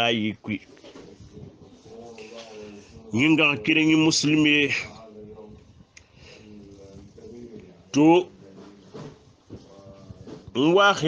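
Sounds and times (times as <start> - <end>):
faint murmuring voices: 0.4 - 10.8.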